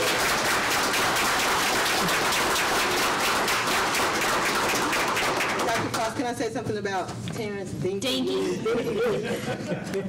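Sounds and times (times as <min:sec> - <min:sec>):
crowd applauding: 0:00.0 - 0:06.0.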